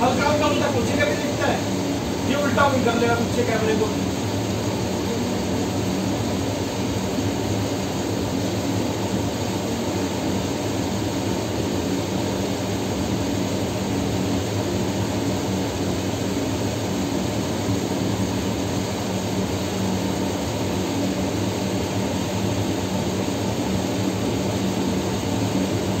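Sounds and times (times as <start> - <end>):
mechanical drone with low hum: 0.0 - 26.0.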